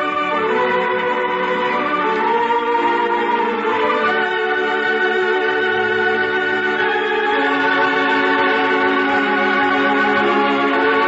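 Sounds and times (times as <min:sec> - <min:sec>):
electronic organ sustained chords: 0:00.0 - 0:11.0.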